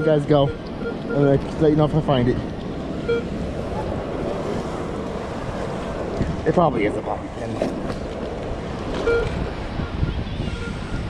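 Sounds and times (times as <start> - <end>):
metal detector beeps: 0.0 - 1.3, 3.0 - 3.3, 9.0 - 9.3, 10.5 - 11.0
wind noise on microphone: 2.9 - 11.0.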